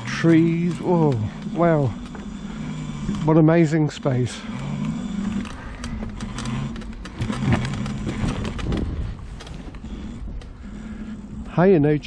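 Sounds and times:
electric motor hum: 0.0s - 12.0s
wheels and frame rattling: 0.0s - 12.0s.

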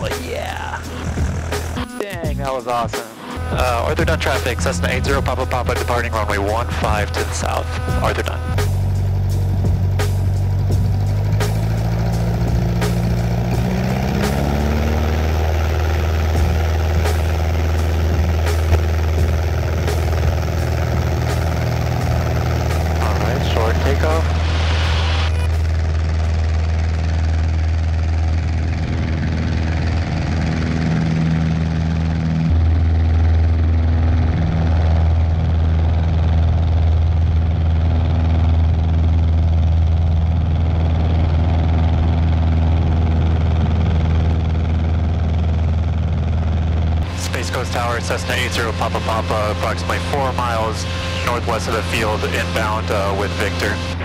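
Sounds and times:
light aircraft engine drone: 0.0s - 54.0s.

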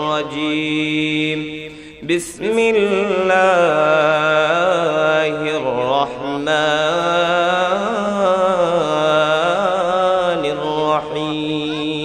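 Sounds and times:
man chanting recitation: 0.0s - 12.0s.

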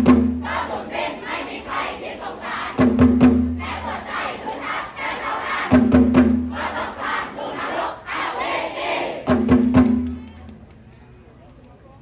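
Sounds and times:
heavy drum strikes: 0.0s - 0.5s, 2.8s - 3.9s, 5.7s - 6.8s, 9.2s - 10.1s
crowd shouting battle cries: 0.4s - 2.8s, 3.6s - 5.9s, 6.5s - 9.3s.

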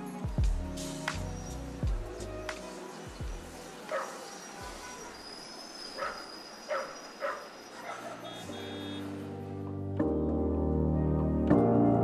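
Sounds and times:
sustained keyboard chords: 0.0s - 4.9s, 8.1s - 12.0s
thin high steady tone: 1.3s - 9.3s.

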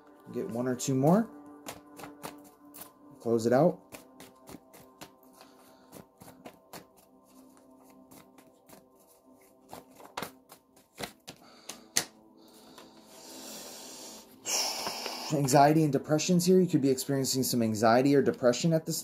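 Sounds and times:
faint background music: 0.0s - 19.0s
paper cards being shuffled: 1.6s - 3.0s, 3.8s - 12.1s
papery rustle: 5.9s - 11.2s.

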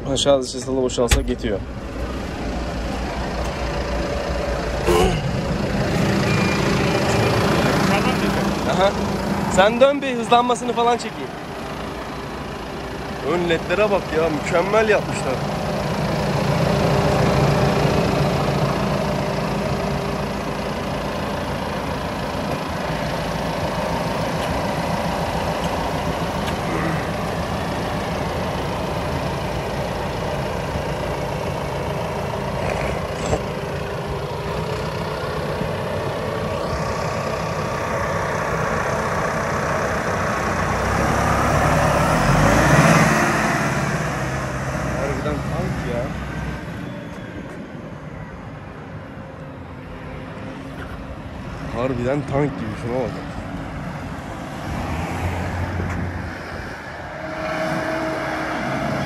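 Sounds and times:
tractor diesel engine passing: 0.0s - 59.0s.

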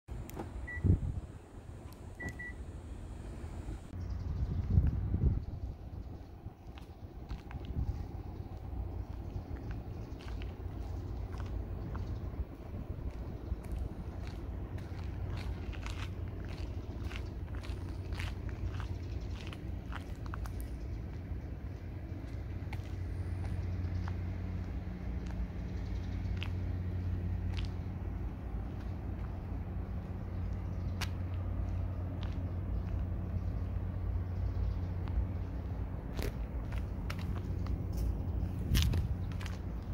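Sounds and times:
engine idling hum: 0.1s - 39.9s
short car beeps: 0.6s - 1.0s, 2.2s - 2.6s.

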